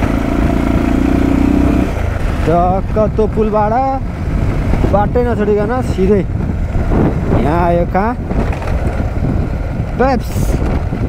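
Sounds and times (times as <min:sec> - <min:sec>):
motorcycle engine rumble: 0:00.0 - 0:11.0
tyres on gravel road: 0:00.0 - 0:11.0
wind noise on microphone: 0:00.0 - 0:11.0.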